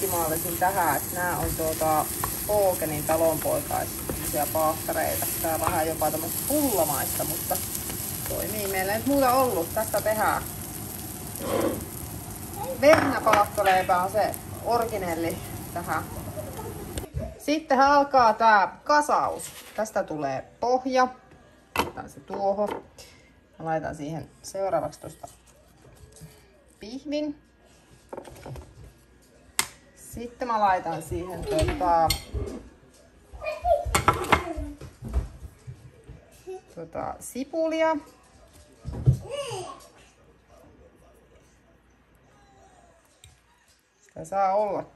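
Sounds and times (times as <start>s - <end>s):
bread frying in a pan: 0.0s - 17.1s.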